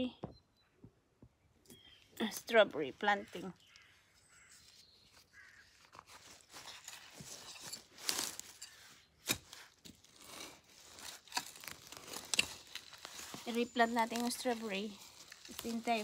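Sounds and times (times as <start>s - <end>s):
glove rustling: 3.7s - 16.0s
garden fork crunching soil: 5.4s - 16.0s.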